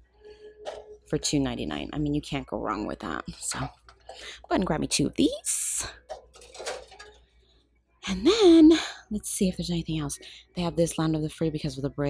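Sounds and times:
toy trucks knocking and clinking: 6.1s - 7.2s.

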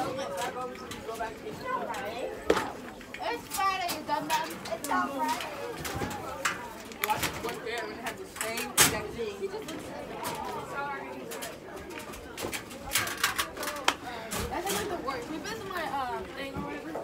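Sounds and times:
students chattering: 0.0s - 17.0s.

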